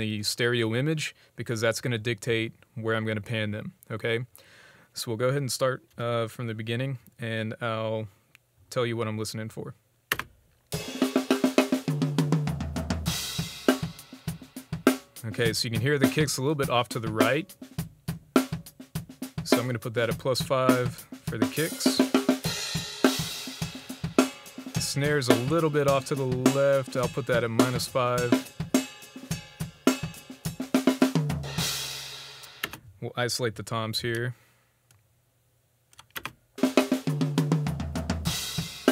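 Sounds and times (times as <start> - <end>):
snare and kick drum hits: 10.8 - 31.9
tom drum fill: 10.8 - 32.7, 36.6 - 38.9.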